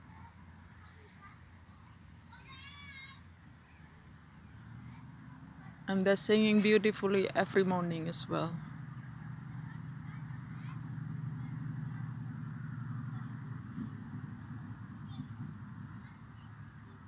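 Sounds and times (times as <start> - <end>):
low steady rumble: 0.0 - 17.0.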